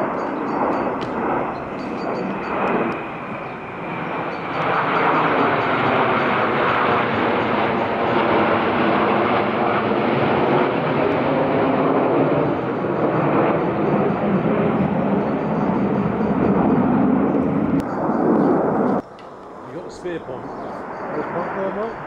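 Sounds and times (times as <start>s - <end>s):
jet engines flying overhead: 0.0s - 22.0s.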